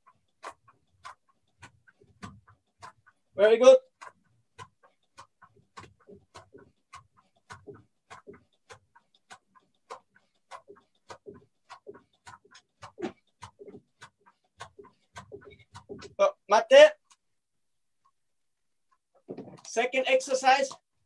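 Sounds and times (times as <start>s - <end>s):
rope and feet slapping a mat: 10.6s - 16.2s.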